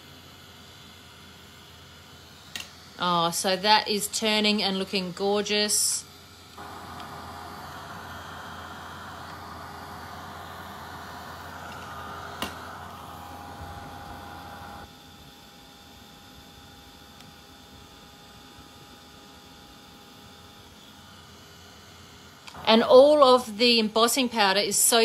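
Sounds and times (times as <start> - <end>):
heat tool blowing: 2.2 - 14.9.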